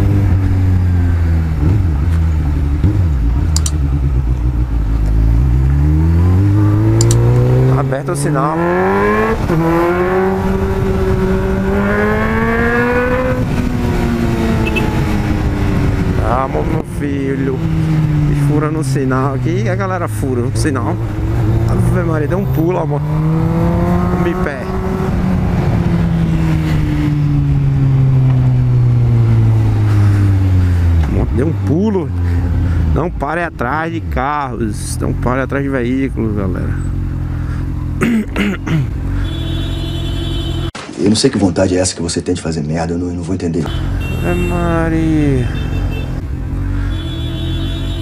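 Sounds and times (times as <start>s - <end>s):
motorcycle engine accelerating: 0.0s - 40.8s, 43.7s - 48.0s
wind noise rushing: 8.8s - 18.4s.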